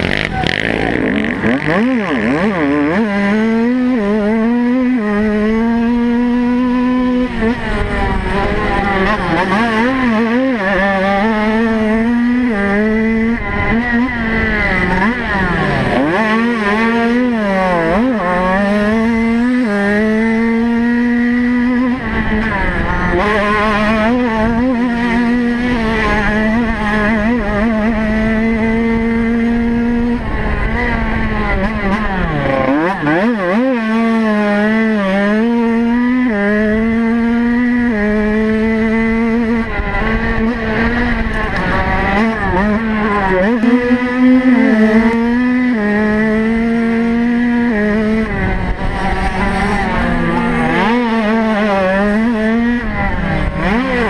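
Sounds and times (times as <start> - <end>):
motorcycle engine revving: 0.0 - 54.0.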